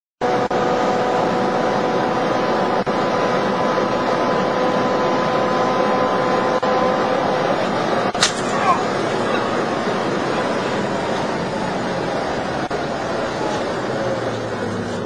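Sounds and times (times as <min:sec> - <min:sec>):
constant whine: 0:00.2 - 0:15.0
road and wind noise in car: 0:00.2 - 0:15.0.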